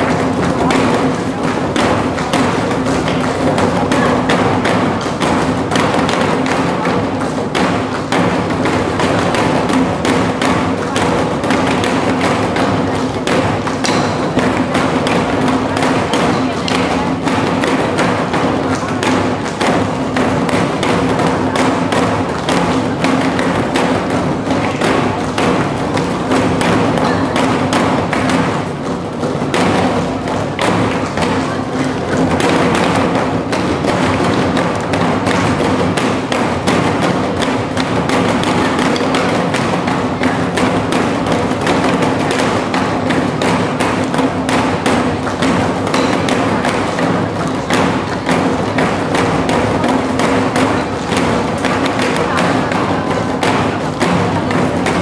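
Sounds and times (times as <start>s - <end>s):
drum ensemble beating barrel drums: 0.0s - 55.0s.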